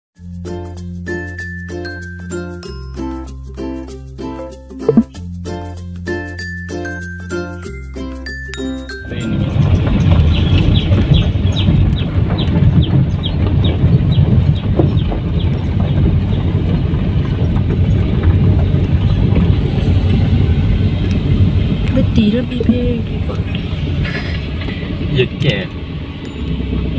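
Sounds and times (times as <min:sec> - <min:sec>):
combine harvester rumbling past: 0:09.0 - 0:26.9.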